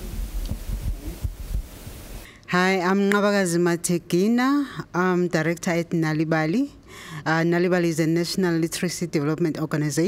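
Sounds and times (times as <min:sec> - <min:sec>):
microphone handling thumps: 0:00.0 - 0:02.0.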